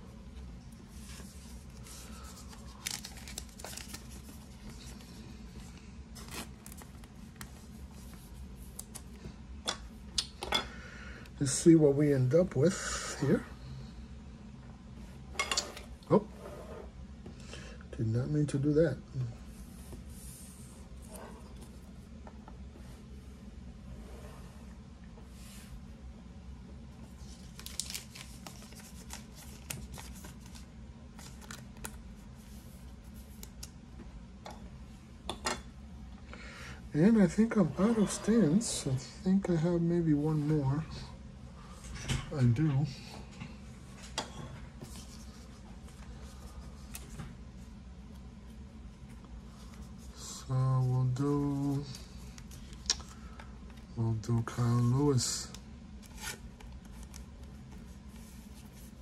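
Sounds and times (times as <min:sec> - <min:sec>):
low steady hum: 0:00.0 - 0:59.0
cards and plastic rustling: 0:00.9 - 0:09.2, 0:27.2 - 0:33.8, 0:49.6 - 0:59.0.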